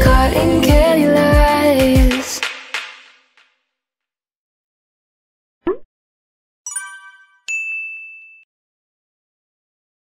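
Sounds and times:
bright electronic dings: 0:06.7 - 0:08.5.

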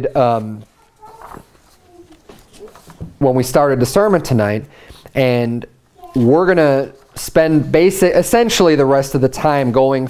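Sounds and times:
paper sheets rustling: 0:00.1 - 0:05.2, 0:06.0 - 0:08.0.

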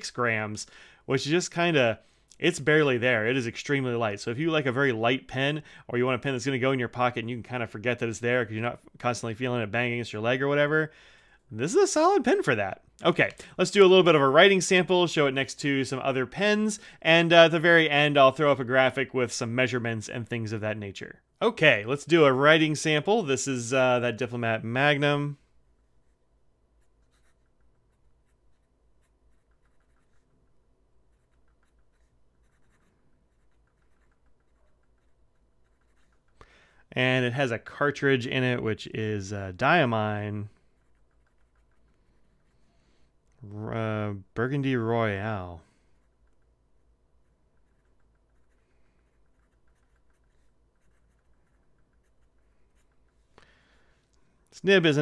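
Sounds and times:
fountain pen scratching on paper: 0:26.8 - 0:30.4, 0:31.0 - 0:36.4, 0:40.7 - 0:42.7, 0:47.2 - 0:53.1.

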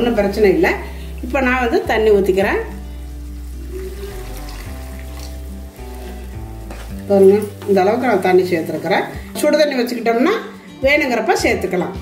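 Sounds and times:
onions sizzling in oil: 0:00.0 - 0:11.2
soft background music: 0:00.0 - 0:12.0
water pouring: 0:00.8 - 0:10.2
wooden spatula stirring: 0:01.3 - 0:10.2.

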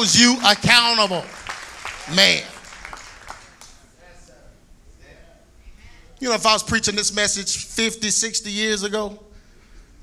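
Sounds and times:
congregation calling out: 0:00.0 - 0:04.0.

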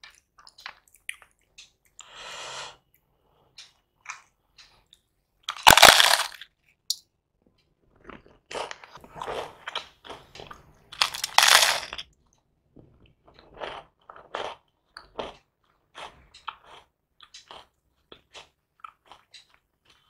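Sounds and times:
chewing: 0:00.0 - 0:02.1, 0:07.4 - 0:20.0
crunching of fried snack: 0:05.5 - 0:06.5, 0:07.8 - 0:12.4, 0:13.2 - 0:20.0.

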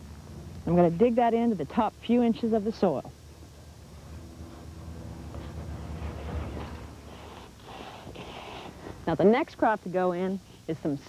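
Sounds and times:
faint low hum: 0:00.0 - 0:11.0
spade scraping soil: 0:05.5 - 0:09.0.

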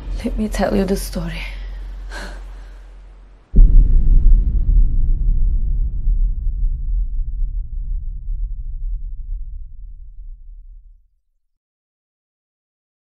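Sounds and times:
deep cinematic boom: 0:00.0 - 0:11.2.

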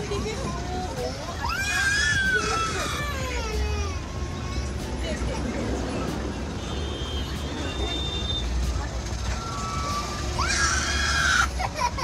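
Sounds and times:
bus rumbling: 0:00.0 - 0:12.0
small children crying and wailing: 0:00.1 - 0:05.5, 0:09.3 - 0:12.0
loud high scream: 0:09.5 - 0:11.5.

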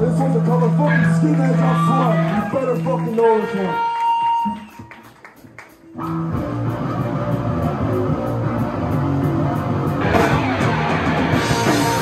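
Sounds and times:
bass guitar: 0:00.0 - 0:04.8, 0:05.8 - 0:12.0
electric guitar: 0:03.4 - 0:12.0
live punk rock band: 0:03.7 - 0:12.0.

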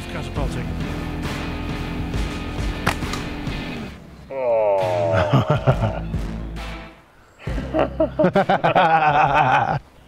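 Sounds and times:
background music: 0:00.0 - 0:09.8.

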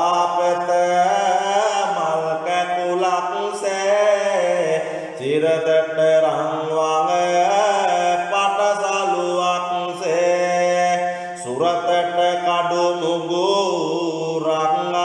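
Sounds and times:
man chanting verses: 0:00.0 - 0:15.0.

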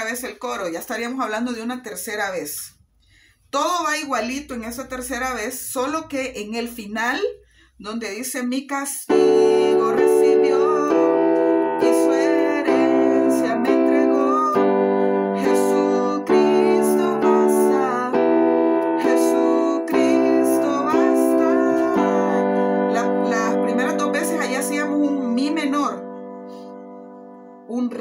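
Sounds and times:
piano chords ringing: 0:09.1 - 0:28.0.

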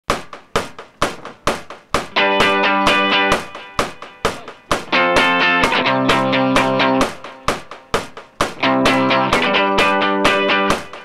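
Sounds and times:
rock drum beat: 0:00.1 - 0:11.0.

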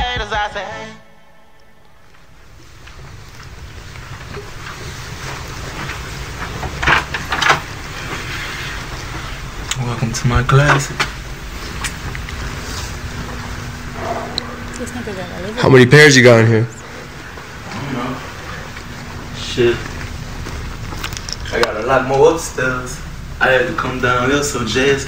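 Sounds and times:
low room rumble: 0:00.0 - 0:25.0.

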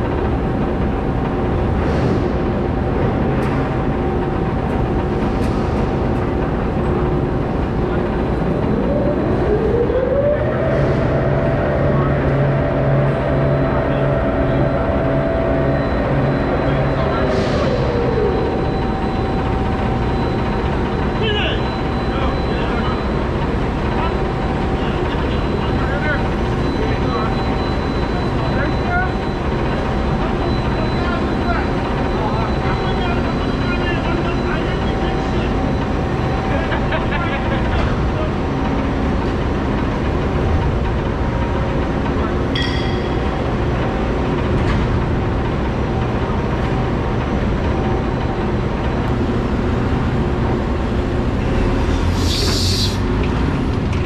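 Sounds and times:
loud machinery noise: 0:00.0 - 0:54.0
thin steady whine: 0:03.6 - 0:53.7.

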